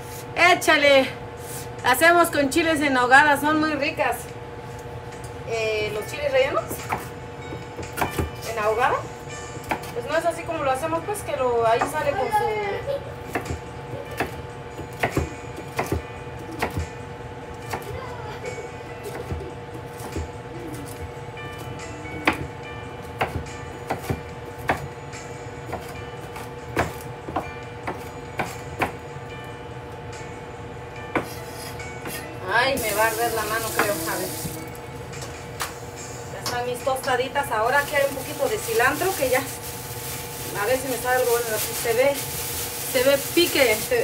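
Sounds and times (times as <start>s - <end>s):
steady background hum: 0.0s - 44.0s
knife chopping on wooden board: 14.2s - 16.0s.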